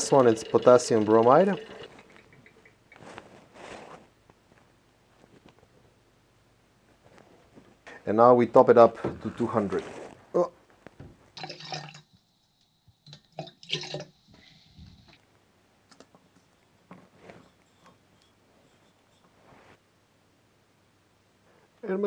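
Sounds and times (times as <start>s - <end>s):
water pouring from plastic jug: 0.0s - 2.2s, 11.4s - 12.1s, 13.4s - 14.2s.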